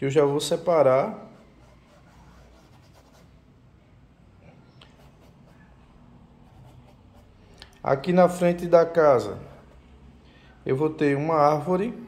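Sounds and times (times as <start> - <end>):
man speaking: 0.0 - 1.4, 7.8 - 9.7, 10.6 - 12.0
low steady hum: 0.0 - 12.0
brush scratching on canvas: 1.1 - 3.4, 4.9 - 5.7, 6.4 - 7.4.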